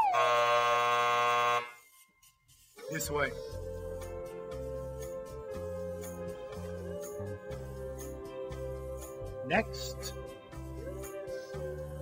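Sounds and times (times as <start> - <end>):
low game-show buzzer: 0.0 - 1.8.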